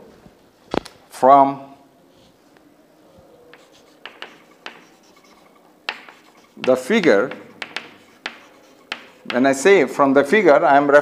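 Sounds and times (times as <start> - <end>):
chalk scratching on chalkboard: 3.1 - 10.0.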